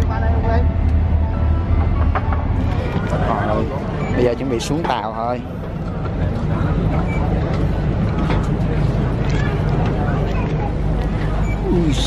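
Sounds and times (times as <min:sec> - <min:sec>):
ferry engines rumbling: 0:00.0 - 0:12.0
people's voices: 0:00.0 - 0:12.0.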